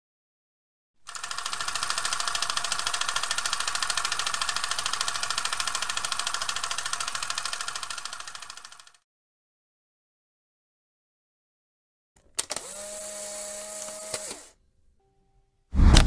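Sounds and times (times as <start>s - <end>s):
rapid mechanical ticking: 1.1s - 9.0s.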